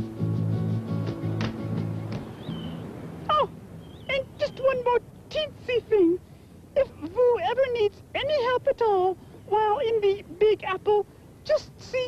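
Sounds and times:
background music: 0.0 - 3.2
faint high chirp: 2.2 - 4.7.

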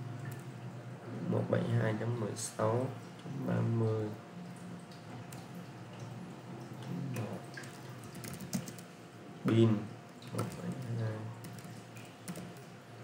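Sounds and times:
typing on computer keyboard: 7.2 - 8.9, 10.3 - 12.7.

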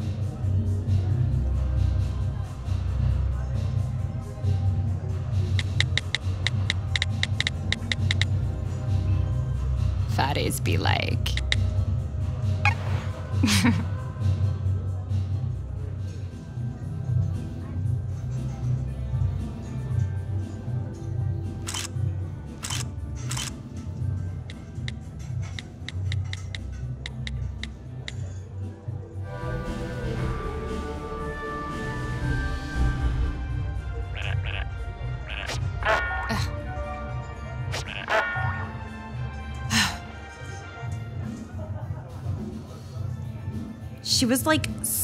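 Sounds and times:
phone keyboard clicks: 5.6 - 8.3, 11.3 - 11.6
phone camera shutter clicks: 22.6 - 23.5
background music with bass: 29.2 - 40.4.

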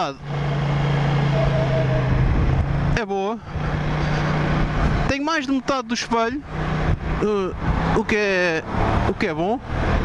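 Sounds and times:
road noise: 0.0 - 10.0
wind rushing: 1.4 - 5.2, 6.4 - 8.0.

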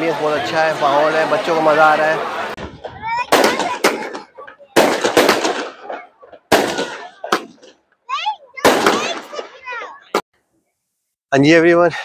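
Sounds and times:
voices: 0.0 - 10.2
fireworks bursting: 3.2 - 7.8, 8.6 - 9.5.

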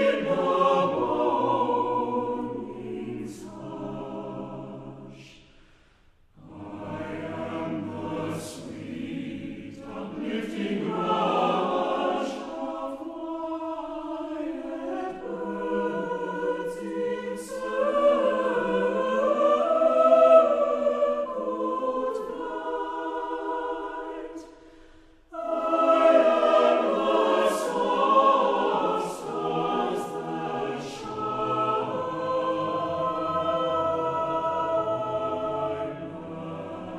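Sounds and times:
choir singing long held notes: 0.0 - 5.6, 6.3 - 36.9.

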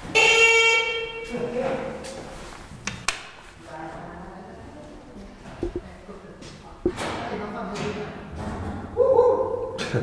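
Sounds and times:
elevator buzzer: 0.0 - 1.3.

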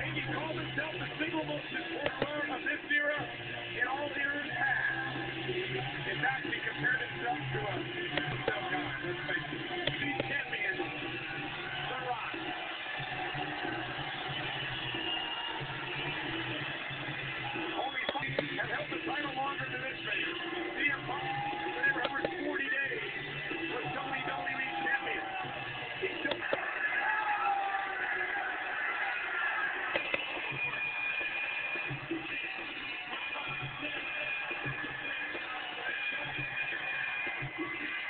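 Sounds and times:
entrance music over sound system: 0.0 - 38.0
large crowd noise: 0.0 - 38.0.

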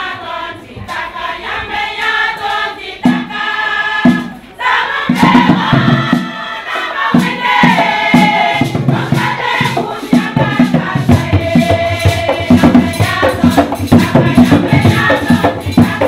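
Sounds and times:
women's choir singing: 0.0 - 16.0.

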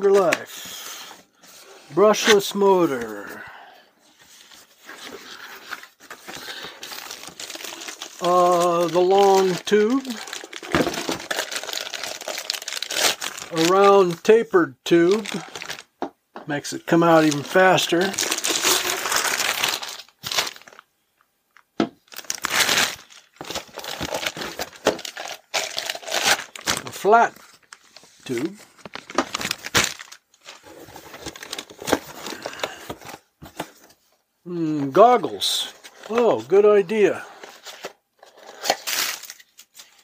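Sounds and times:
plastic wrapping crinkling: 4.8 - 14.2, 15.0 - 16.0, 17.1 - 20.9, 21.5 - 33.2, 37.4 - 40.0.

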